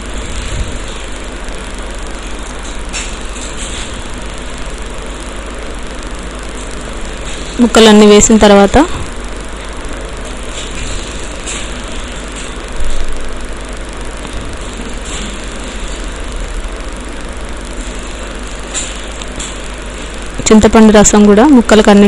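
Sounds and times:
low hum: 0.0 - 22.0.

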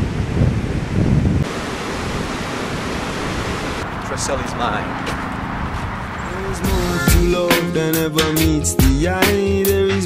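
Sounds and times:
wind buffeting microphone: 0.0 - 6.9
ocean surf breaking: 1.4 - 5.7.

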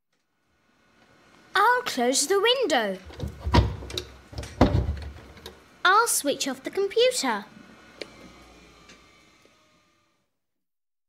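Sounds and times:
window clicks and rattles: 3.1 - 5.5
window shutting knocks: 3.2 - 5.2.

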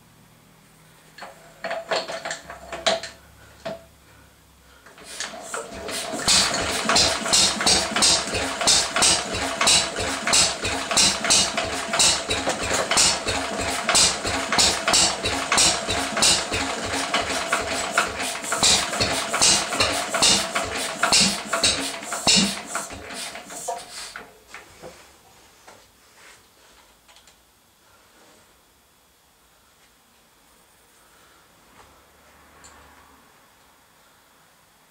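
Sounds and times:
stationary engine running roughly: 5.2 - 23.8.

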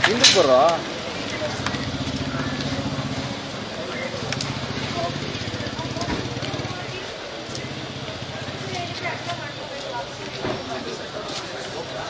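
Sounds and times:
indistinct voices: 0.0 - 12.0
vehicle engine idling: 0.9 - 9.7.

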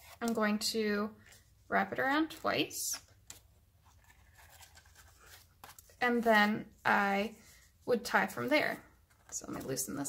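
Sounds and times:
thread being wrapped around card: 2.9 - 6.1.

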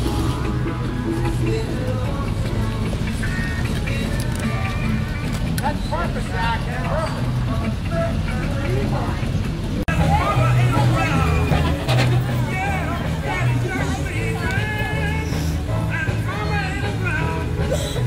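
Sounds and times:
music playing: 0.0 - 18.0
people chattering: 0.0 - 18.0
running vehicles: 0.0 - 18.0.

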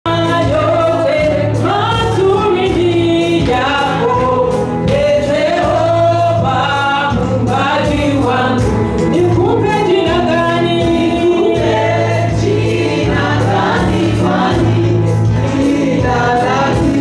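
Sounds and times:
instrumental accompaniment: 0.1 - 17.0
voices singing gospel song: 0.1 - 17.0.

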